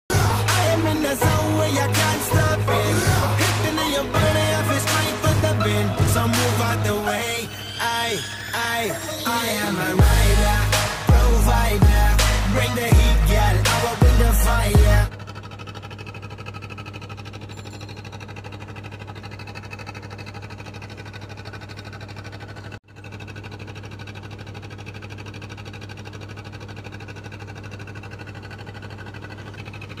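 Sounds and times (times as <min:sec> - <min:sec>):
pulsing motor hum: 0:00.1 - 0:07.7, 0:08.9 - 0:30.0.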